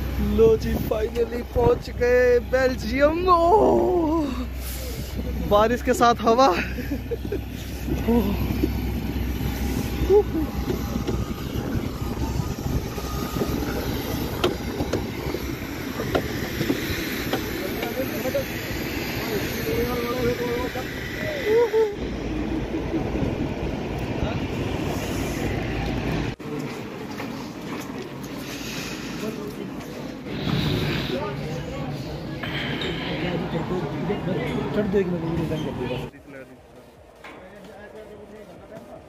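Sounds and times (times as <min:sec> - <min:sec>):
voices of people walking: 0:02.9 - 0:39.0
wind buffeting microphone: 0:06.8 - 0:26.4.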